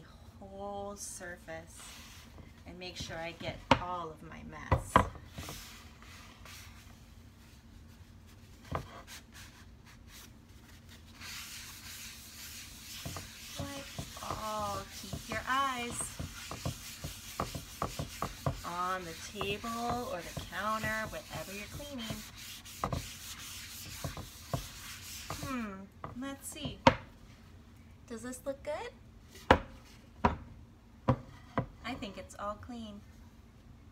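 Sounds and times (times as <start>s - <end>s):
paper towel wiping wooden board: 5.4s - 25.5s
wooden cutting board knocking: 13.0s - 22.2s.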